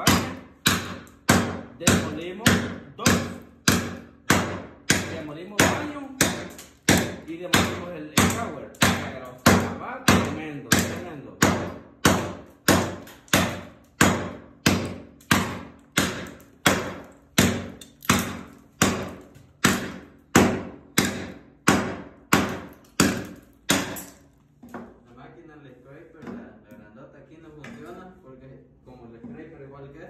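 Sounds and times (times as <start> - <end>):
hatchet chopping floor tile: 0.0 - 24.8.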